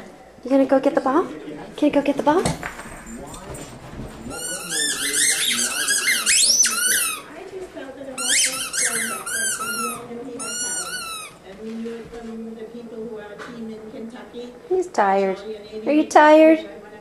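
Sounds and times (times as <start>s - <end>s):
squeaky dog toy squeaking: 4.3s - 7.3s, 8.2s - 11.4s.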